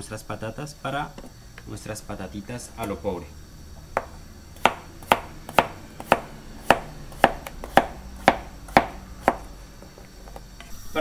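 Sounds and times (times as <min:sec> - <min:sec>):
knife slicing potato on cutting board: 0:03.9 - 0:09.5.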